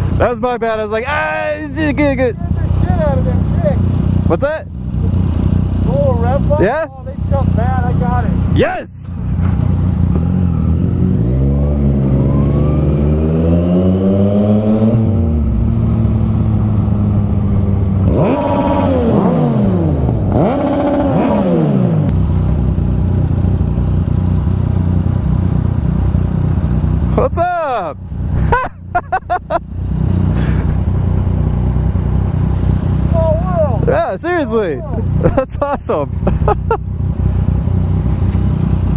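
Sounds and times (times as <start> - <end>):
motorcycle engine revving: 1.2 - 38.9.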